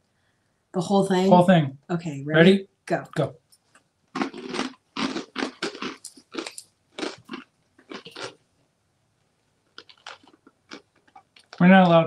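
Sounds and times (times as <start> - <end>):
people chewing crunchy snacks: 3.7 - 8.4, 9.7 - 12.0.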